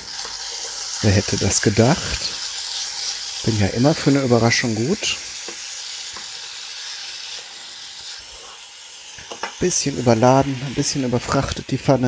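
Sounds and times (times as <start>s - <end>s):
chicken sizzling in frying pan: 0.0s - 12.0s.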